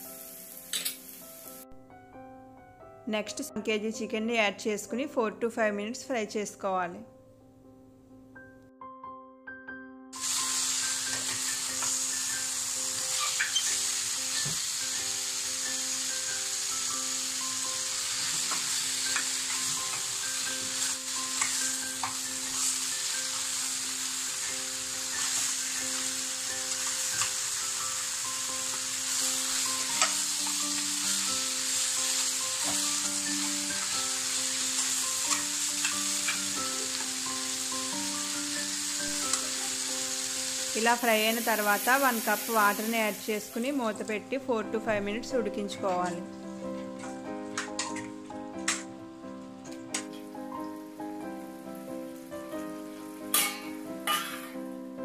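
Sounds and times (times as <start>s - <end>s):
chicken sizzling in oil: 10.2s - 43.6s.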